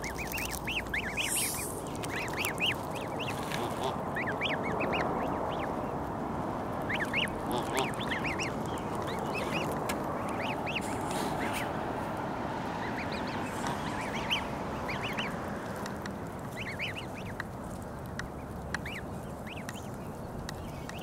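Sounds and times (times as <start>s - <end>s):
goslings peeping: 0.0s - 21.0s.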